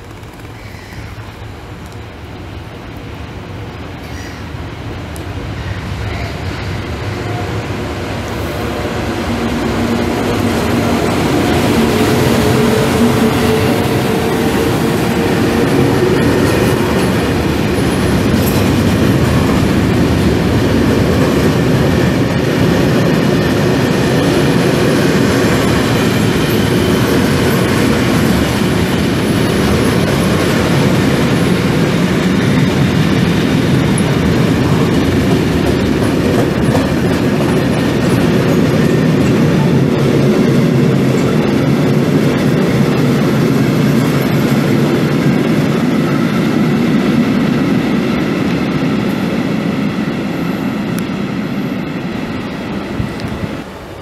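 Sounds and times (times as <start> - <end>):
train wheels rumbling on rail: 0.0 - 54.0.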